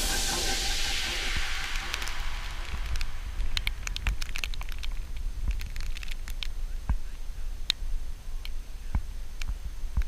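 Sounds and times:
wind rumble on microphone: 0.0s - 10.0s
light crackles and ticks: 1.6s - 10.0s.

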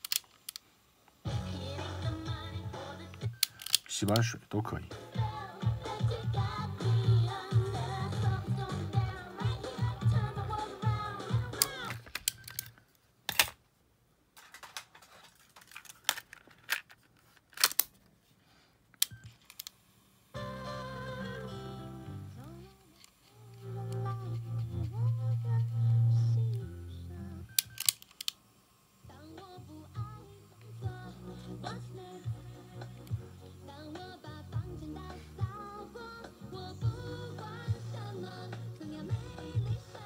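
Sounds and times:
song with strong bass line: 4.9s - 11.6s.

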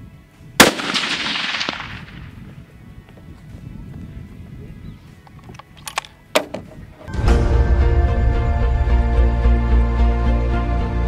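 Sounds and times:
rifle shot echoing: 0.6s - 2.4s.

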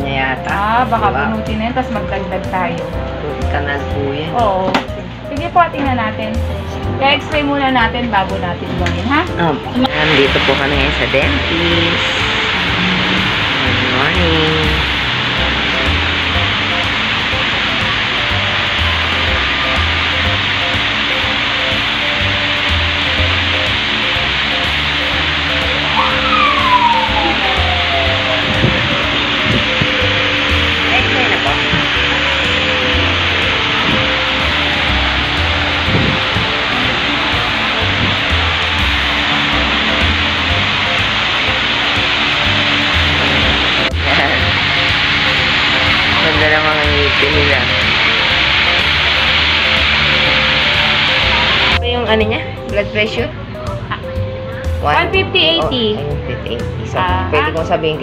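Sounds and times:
faint music: 0.0s - 58.0s
loud steady rushing noise: 7.6s - 53.8s
tone sliding downward: 8.9s - 52.0s.

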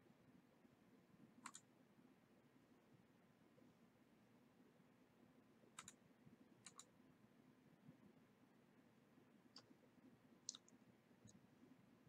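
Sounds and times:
computer mouse clicks: 1.4s - 1.7s, 5.8s - 6.0s, 6.6s - 6.9s, 9.5s - 9.7s, 10.5s - 11.4s.

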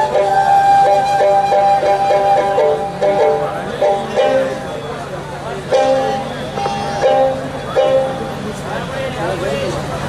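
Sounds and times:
plucked lute melody: 0.0s - 4.7s, 5.7s - 8.4s
bamboo flute: 0.0s - 5.1s.

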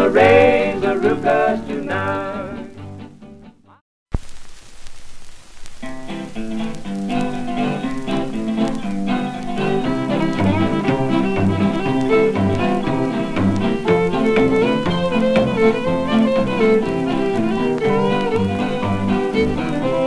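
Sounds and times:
string band record music: 0.0s - 3.8s, 5.8s - 20.0s
record surface hiss: 0.0s - 20.0s.

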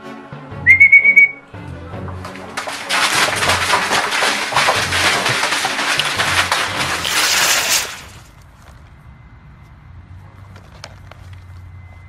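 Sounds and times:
background music: 0.0s - 7.1s
short whistle blast: 0.6s - 1.5s.

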